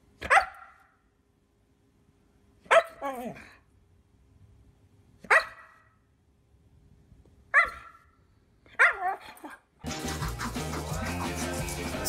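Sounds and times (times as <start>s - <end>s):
dog barking: 0.2s - 1.0s, 2.7s - 3.4s, 5.2s - 6.0s, 7.5s - 9.6s
music: 9.8s - 12.0s.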